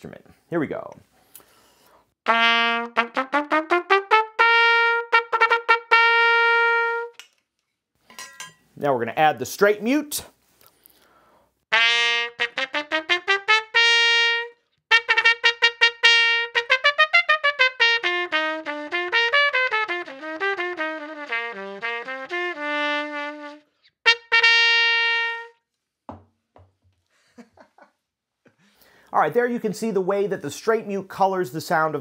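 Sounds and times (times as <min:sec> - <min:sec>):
muted trumpet playing: 0:02.2 - 0:07.2, 0:11.7 - 0:25.6.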